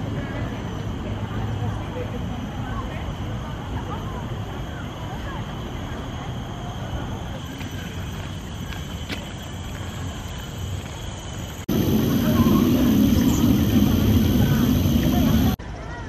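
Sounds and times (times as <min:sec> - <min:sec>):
low outdoor rumble: 0:11.1 - 0:15.6.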